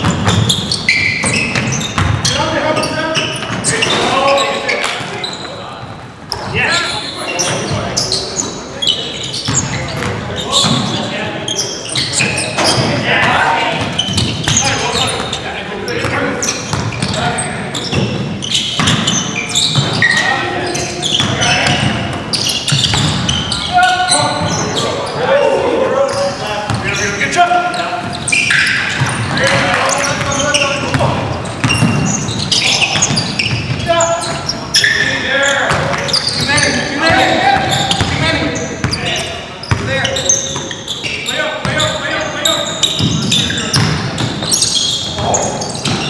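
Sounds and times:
basketball bouncing on wood floor: 0.0s - 2.3s, 18.8s - 19.2s, 21.2s - 23.4s, 42.9s - 46.0s
sharp shoe squeaks: 0.0s - 5.7s, 6.3s - 13.0s, 13.8s - 25.3s, 26.0s - 46.0s
players calling out: 0.0s - 46.0s.

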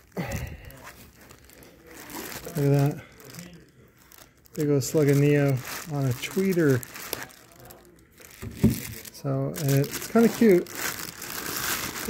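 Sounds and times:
plastic wrapping crinkling: 0.0s - 12.0s.

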